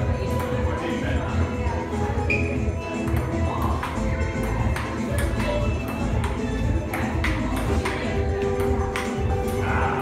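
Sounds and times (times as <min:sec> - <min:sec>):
background music with steady beat: 0:00.0 - 0:10.0
table tennis ball ticking: 0:03.0 - 0:09.7.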